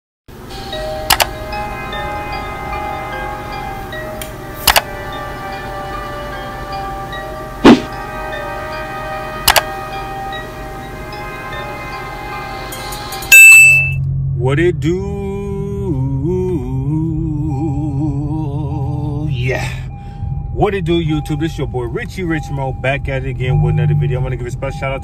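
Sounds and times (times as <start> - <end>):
background music sustained chords: 0.3 - 25.0
sharp hits: 7.6 - 8.0
loud bright ding: 13.3 - 14.0.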